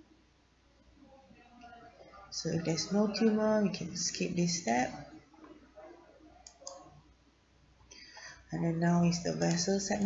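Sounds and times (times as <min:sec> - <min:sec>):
computer mouse clicks: 0:06.4 - 0:06.9.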